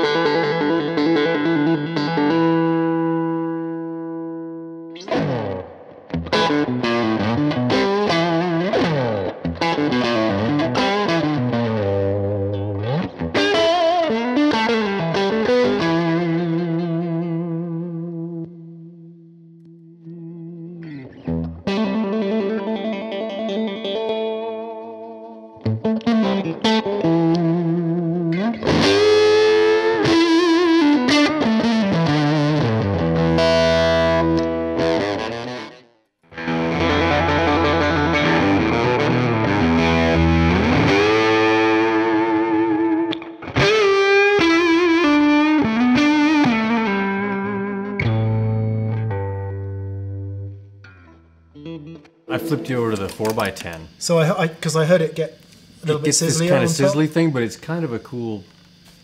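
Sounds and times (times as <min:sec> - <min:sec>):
fuzzy electric guitar: 0:00.0 - 0:59.0.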